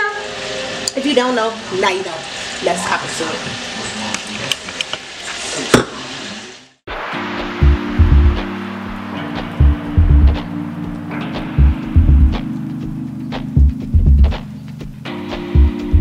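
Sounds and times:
chicken sizzling in a pan: 0.1 - 6.7
music with heavy bass beat: 6.9 - 16.0.

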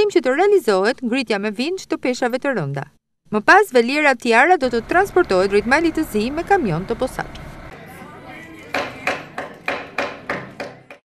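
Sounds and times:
hammer strikes: 8.7 - 11.0.

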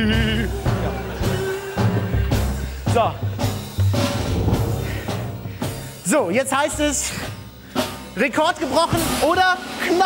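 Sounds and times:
deep drum hits: 2.9 - 6.0.

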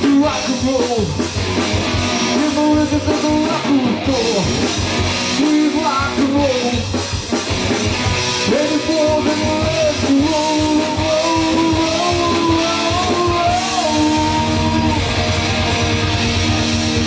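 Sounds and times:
bass guitar: 0.0 - 17.0
drum kit: 0.0 - 17.0
electric guitar lead: 0.0 - 17.0.

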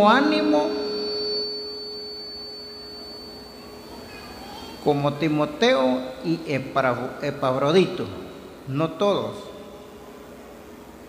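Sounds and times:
echo of amplified voice: 0.0 - 1.6, 4.8 - 10.1
microphone feedback tone: 0.0 - 8.7.

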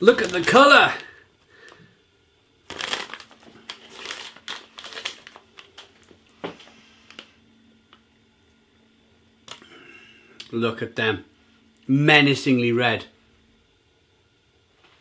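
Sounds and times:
crisp bag crinkling: 0.0 - 1.8, 2.6 - 7.3.

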